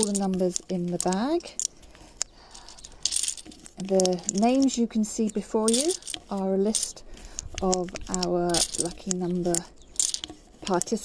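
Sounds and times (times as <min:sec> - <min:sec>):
rustle of tags and bag: 0:00.0 - 0:11.0
tags clicking and rattling into bag: 0:00.0 - 0:11.0.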